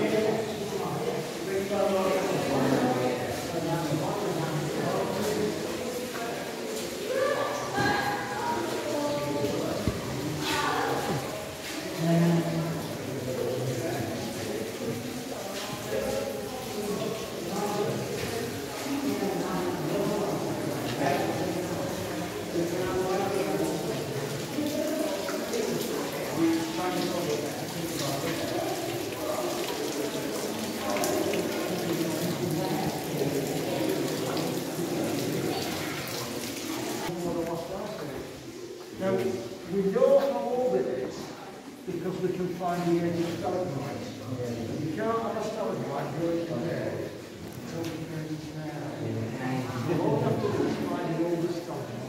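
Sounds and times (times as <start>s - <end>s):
water trickling down rock: 0.0s - 38.0s
group of people talking: 0.0s - 52.0s.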